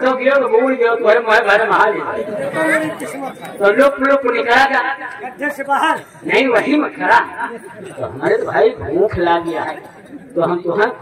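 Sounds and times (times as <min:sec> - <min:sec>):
actor speaking on stage: 0:00.0 - 0:11.0.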